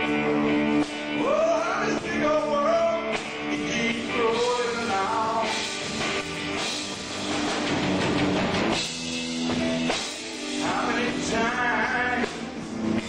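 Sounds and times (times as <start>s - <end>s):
drum kit: 0.0s - 13.0s
electric guitar: 0.0s - 13.0s.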